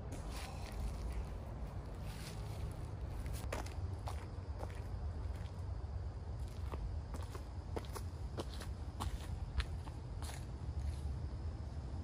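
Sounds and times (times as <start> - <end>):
steady low rumble: 0.0 - 12.0
footsteps crunching dry leaves: 0.1 - 5.5.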